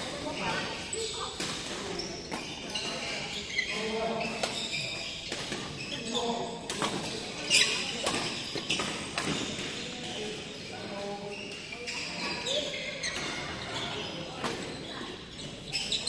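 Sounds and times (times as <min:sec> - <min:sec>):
rackets hitting shuttlecock: 0:06.6 - 0:09.9.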